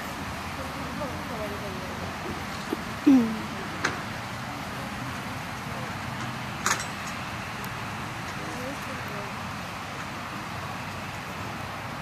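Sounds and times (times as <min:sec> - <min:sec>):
open-air background noise: 0:00.0 - 0:12.0.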